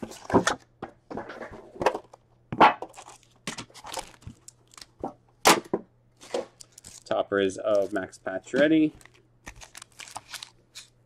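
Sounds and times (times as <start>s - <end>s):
plastic wrappers crinkling: 2.9s - 5.0s, 6.2s - 11.0s.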